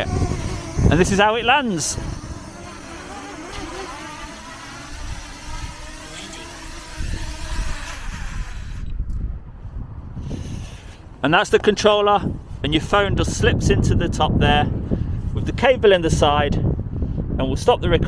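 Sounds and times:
drone propellers buzzing: 0:00.0 - 0:09.2
wind rumbling on microphone: 0:00.0 - 0:18.0.

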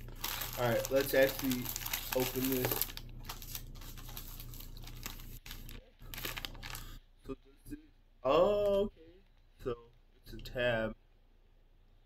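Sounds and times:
plastic packaging crinkling: 0:00.0 - 0:07.0
wrapper tearing: 0:00.0 - 0:07.0.

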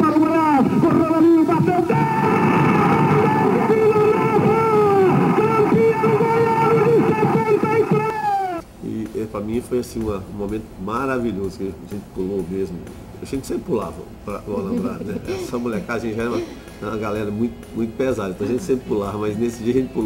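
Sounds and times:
commentator's long goal shout: 0:00.0 - 0:08.6.

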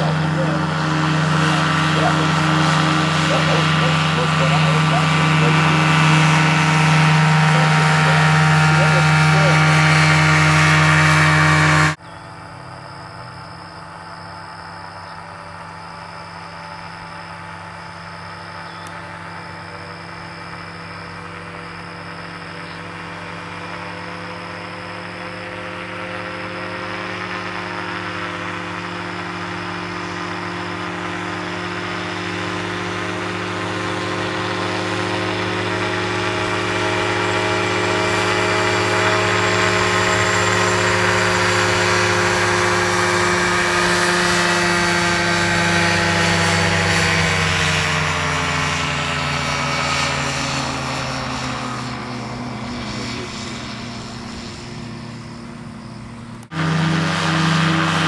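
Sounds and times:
gyroplane engine and propeller: 0:00.0 - 0:58.0.

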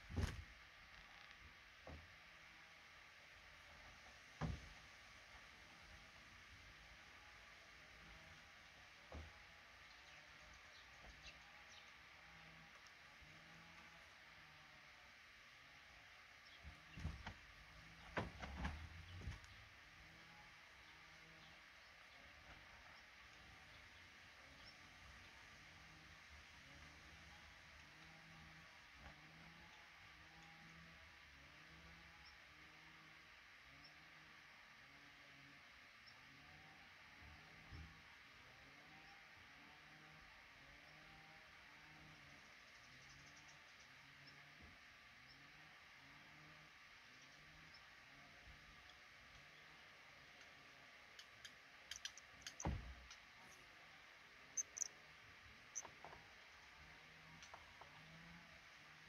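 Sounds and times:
sharp clicks: 0:51.2 - 0:53.2
dull thump: 0:52.6 - 0:53.0.

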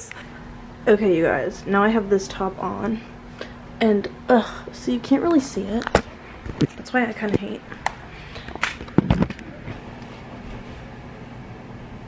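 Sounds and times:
low room hum: 0:00.0 - 0:12.0
camera knocks and bumps: 0:08.6 - 0:09.5.

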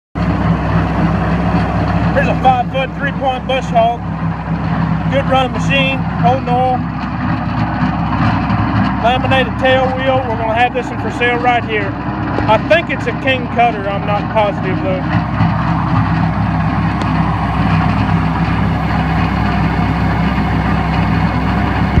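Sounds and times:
tractor engine running: 0:00.2 - 0:22.0.

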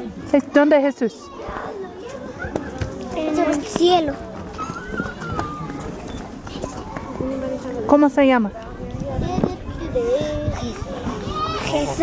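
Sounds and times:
children and adults talking: 0:00.0 - 0:12.0.

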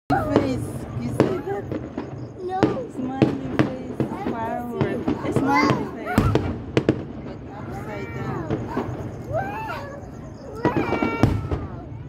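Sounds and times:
fireworks bangs: 0:00.1 - 0:12.0.

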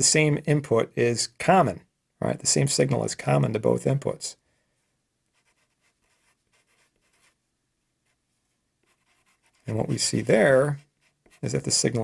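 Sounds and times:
marker scratching on paper: 0:05.3 - 0:07.4, 0:08.8 - 0:12.0.

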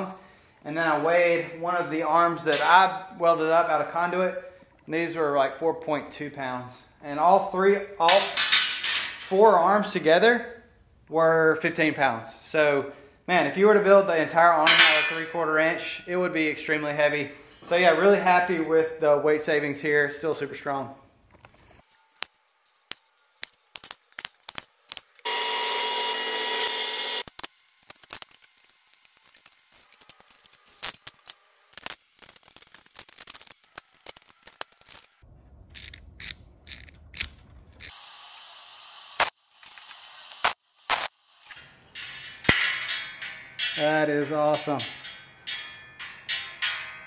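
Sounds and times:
power tool running: 0:25.2 - 0:27.3, 0:37.9 - 0:40.5
metal parts clicking and knocking: 0:27.2 - 0:37.9.

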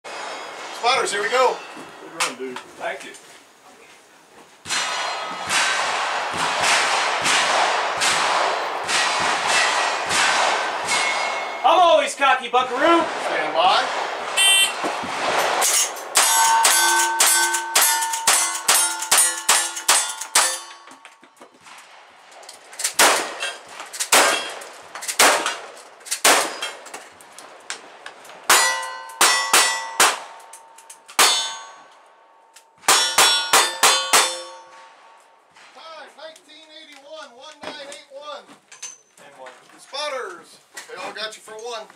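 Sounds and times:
steel targets ringing: 0:00.1 - 0:02.4, 0:04.7 - 0:05.8, 0:08.8 - 0:12.2, 0:14.4 - 0:21.4, 0:28.5 - 0:35.1
gunshots: 0:04.6 - 0:11.6, 0:12.7 - 0:20.7, 0:21.6 - 0:26.9, 0:27.8 - 0:30.4.

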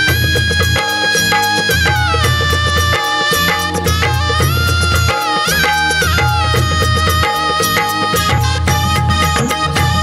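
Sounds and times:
bass: 0:00.0 - 0:10.0
held sliding melody line: 0:00.0 - 0:10.0
steady percussion beat: 0:00.0 - 0:10.0.

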